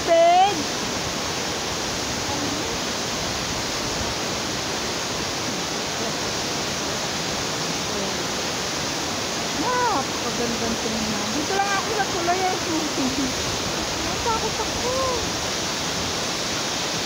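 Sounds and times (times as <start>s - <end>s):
waterfall rushing: 0.0s - 17.0s.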